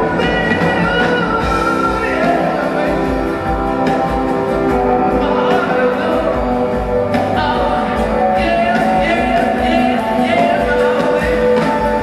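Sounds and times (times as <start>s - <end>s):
live band instrumental music: 0.0s - 12.0s.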